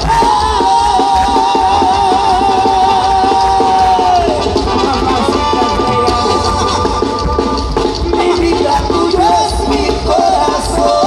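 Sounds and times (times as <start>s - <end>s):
live brass band music: 0.0s - 11.0s.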